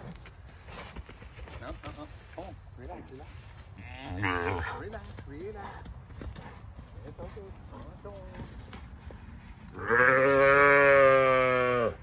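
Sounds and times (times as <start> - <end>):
calf bawling: 3.8 - 4.8.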